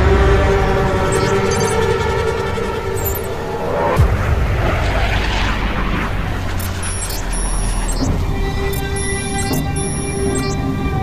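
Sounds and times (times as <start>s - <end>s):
fighter jet flying past: 0.0s - 8.7s.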